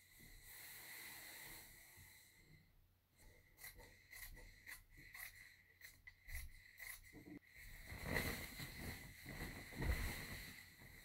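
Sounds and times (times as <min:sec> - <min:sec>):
hands brushing fabric: 0:07.7 - 0:11.0.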